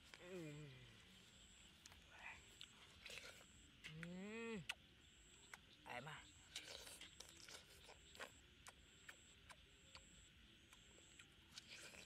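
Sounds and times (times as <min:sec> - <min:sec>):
person chewing watermelon: 0:00.0 - 0:12.0.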